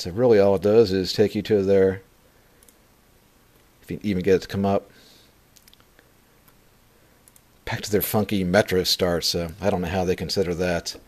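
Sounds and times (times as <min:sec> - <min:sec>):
man speaking: 0:00.0 - 0:02.1, 0:03.8 - 0:05.0, 0:07.6 - 0:11.0.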